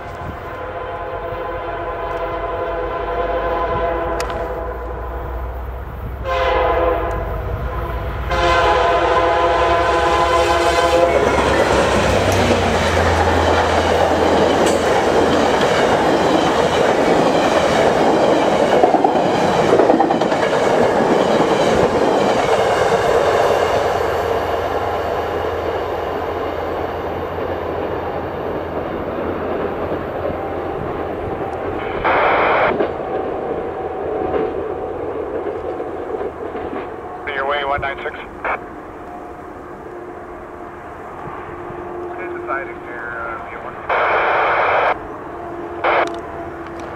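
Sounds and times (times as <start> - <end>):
train horn blasts: 0.0 - 5.5, 6.1 - 12.3, 39.1 - 46.9
train rushing past: 0.0 - 46.9.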